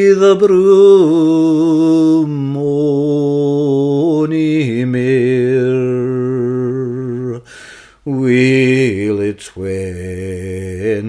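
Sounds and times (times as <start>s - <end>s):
man singing unaccompanied ballad: 0.0s - 11.0s.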